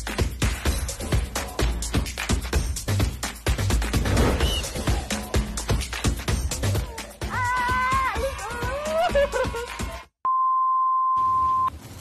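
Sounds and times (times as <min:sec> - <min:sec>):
background music: 0:00.0 - 0:10.1.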